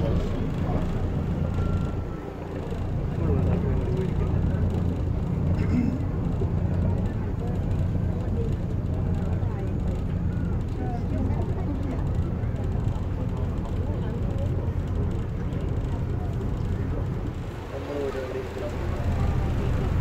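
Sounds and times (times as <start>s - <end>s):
boat engine drone: 0.0s - 20.0s
passengers talking faintly: 0.0s - 20.0s.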